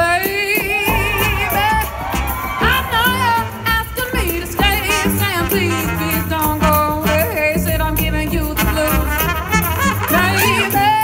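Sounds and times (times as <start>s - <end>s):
percussion: 0.0s - 11.0s
upright bass: 0.7s - 11.0s.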